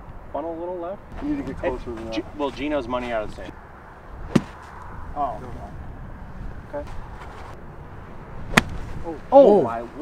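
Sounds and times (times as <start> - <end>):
golf club striking ball: 4.2 - 4.8, 8.5 - 8.9.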